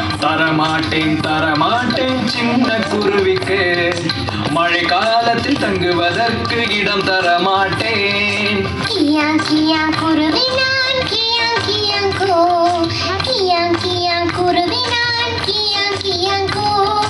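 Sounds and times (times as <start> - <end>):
instrumental music: 0.0 - 17.0
child singing: 8.8 - 17.0.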